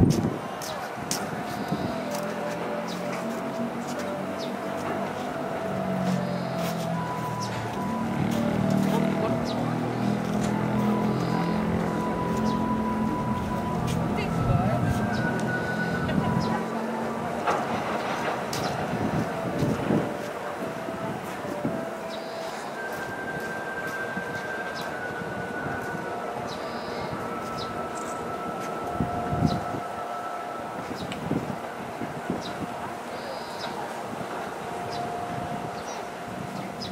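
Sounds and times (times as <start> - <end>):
freight train rumble: 0.0 - 36.9
train wheels clicking over rail joints: 17.1 - 20.7.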